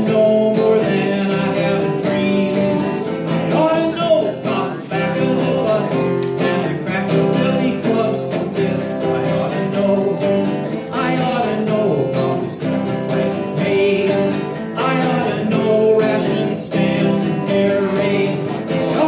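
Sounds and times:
acoustic guitar strumming: 0.0s - 19.0s
man singing folk song: 0.0s - 19.0s.

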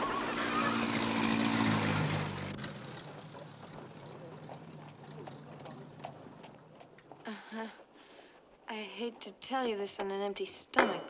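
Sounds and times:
car engine running: 0.0s - 7.2s.

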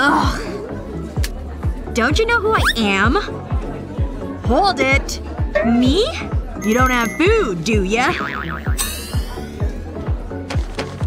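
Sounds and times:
background music with beat: 3.1s - 11.0s.

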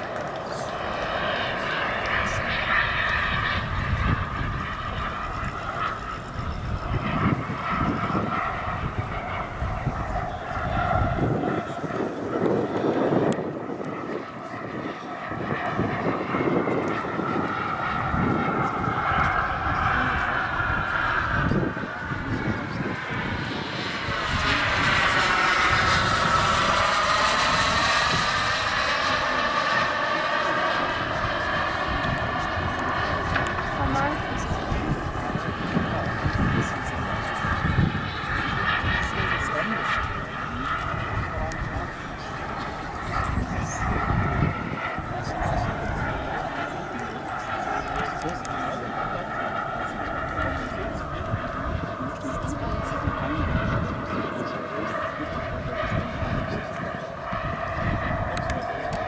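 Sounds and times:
model jet turbine engine: 0.0s - 59.0s.

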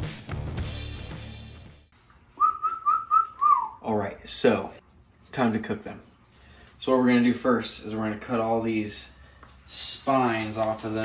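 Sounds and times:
man whistling: 2.4s - 3.8s
man speaking: 3.8s - 6.1s, 6.8s - 11.0s.

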